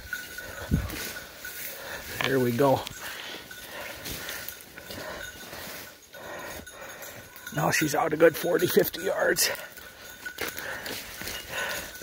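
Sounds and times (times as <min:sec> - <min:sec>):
leaves and branches rustling: 0:00.0 - 0:06.6
footsteps in thick brush: 0:00.0 - 0:07.5, 0:09.3 - 0:12.0.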